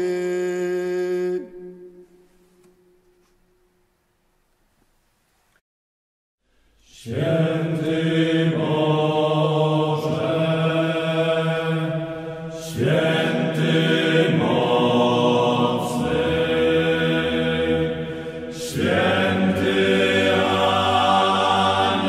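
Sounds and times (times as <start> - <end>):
slow chant-like hymn: 6.6 - 22.0.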